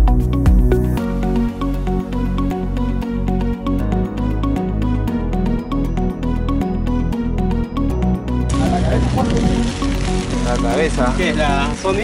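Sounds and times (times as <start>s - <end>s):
background music: 0.0s - 12.0s
wind noise on microphone: 8.5s - 12.0s.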